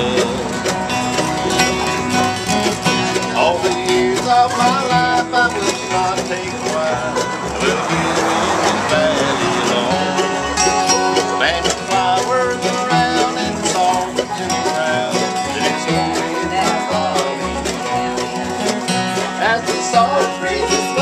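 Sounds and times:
banjo: 0.0s - 21.0s
mandolins picking: 0.0s - 21.0s
upright bass: 0.0s - 21.0s.

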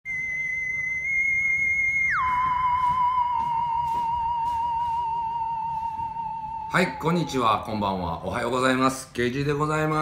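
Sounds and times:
high-pitched whistle-like tone: 0.0s - 8.2s.

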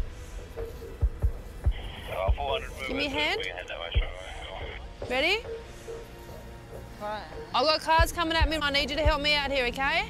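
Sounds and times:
background music with bass beats: 0.0s - 6.1s, 6.7s - 10.0s.

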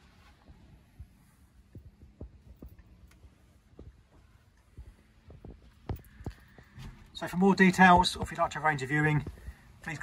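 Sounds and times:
faint low hum: 0.0s - 10.0s
soft low thuds: 0.3s - 9.8s.

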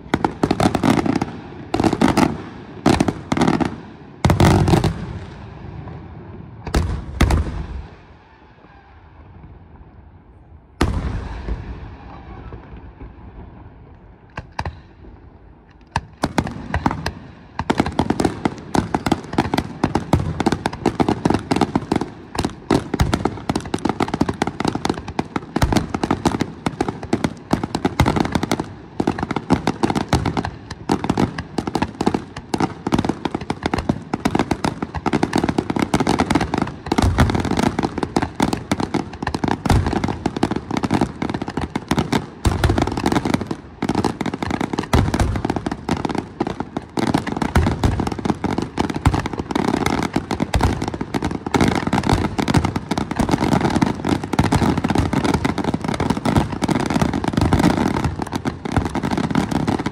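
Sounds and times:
deep fireworks booms: 0.0s - 59.9s
fireworks crackling and popping: 0.0s - 59.9s.

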